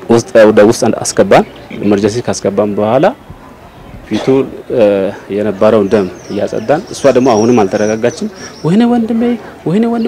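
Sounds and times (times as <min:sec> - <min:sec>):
man speaking: 0:00.0 - 0:03.2, 0:04.0 - 0:10.0.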